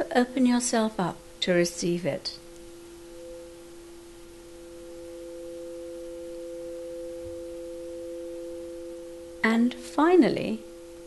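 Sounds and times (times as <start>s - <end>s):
soft two-tone drone: 2.4s - 11.0s.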